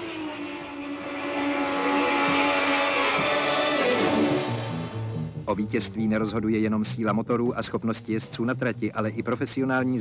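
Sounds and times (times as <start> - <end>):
racing car engine at high revs: 0.0 - 5.2.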